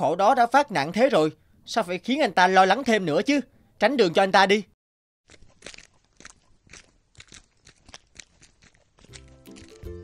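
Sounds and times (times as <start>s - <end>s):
crunching footsteps on dirt path: 5.3s - 10.0s.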